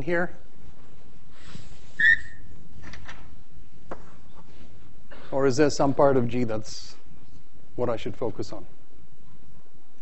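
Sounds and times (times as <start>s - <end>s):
short high squeak: 2.0s - 2.4s.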